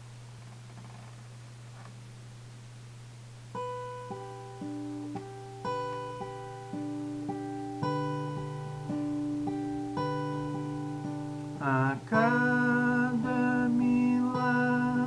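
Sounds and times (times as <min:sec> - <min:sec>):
fingerpicked acoustic guitar: 0:03.4 - 0:15.0.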